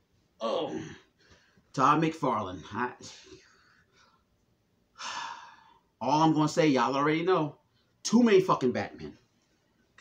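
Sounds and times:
man sighing: 5.0 - 5.8.

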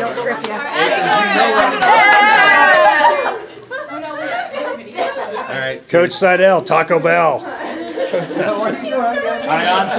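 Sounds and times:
excited group chatter: 0.0 - 9.9.

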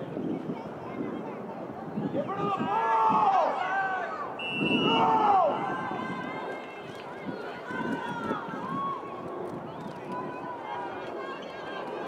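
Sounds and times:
voices shouting outdoors: 1.2 - 12.0.

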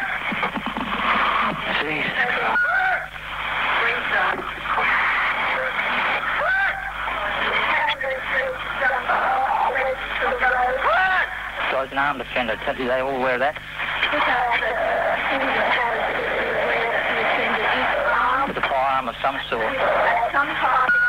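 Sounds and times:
radio hiss: 0.0 - 21.0.

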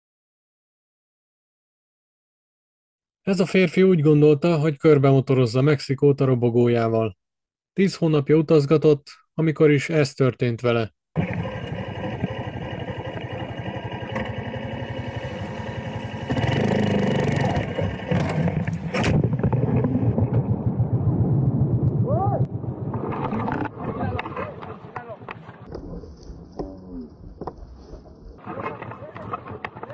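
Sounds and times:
small motorcycle engine running: 11.2 - 19.0
wind rushing past microphone: 17.4 - 26.0
raised voices: 22.0 - 22.5.

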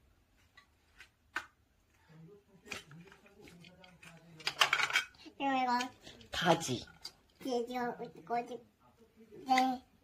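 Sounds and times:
plastic toy pieces clacking: 2.7 - 6.0.

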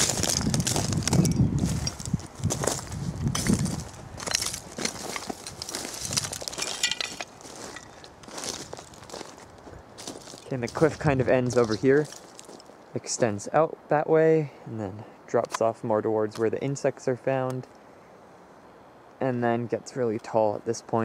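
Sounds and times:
footsteps crunching on loose shale: 0.0 - 12.9.

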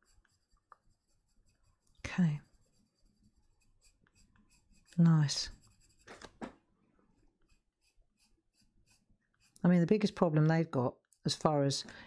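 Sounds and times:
pencil scratching on paper: 0.0 - 6.3, 7.1 - 10.4.

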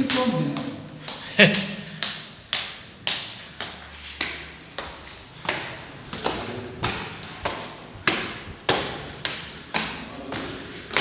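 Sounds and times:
footsteps on stone stairs: 0.0 - 11.0.

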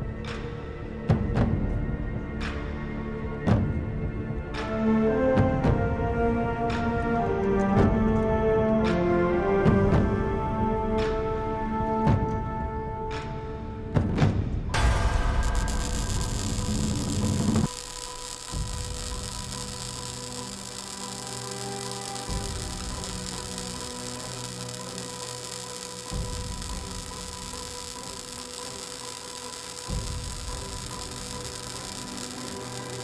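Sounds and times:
low droning background music: 0.0 - 33.0
louder score music: 14.8 - 33.0.

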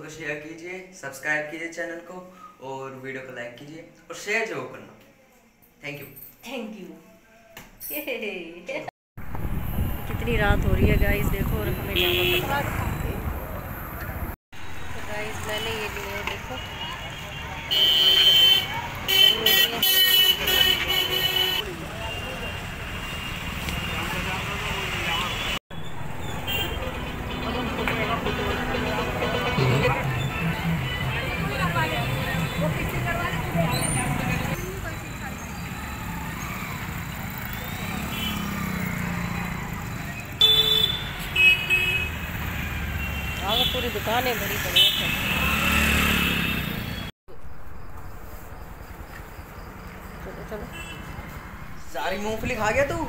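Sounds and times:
street noise: 9.2 - 53.0
people chatting: 10.1 - 13.7, 15.0 - 17.8, 26.8 - 35.6
vehicle horn blasts: 11.8 - 12.6, 16.4 - 22.5, 26.4 - 33.0, 40.4 - 44.1.

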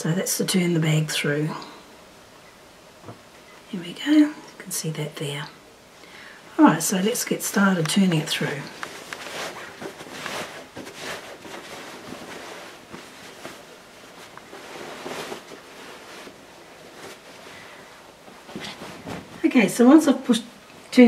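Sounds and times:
cloth rustling: 8.2 - 20.0.

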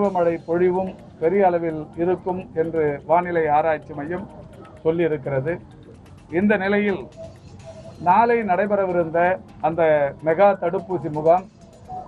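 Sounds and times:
man speaking: 0.0 - 5.6, 6.3 - 7.2, 8.0 - 11.5.

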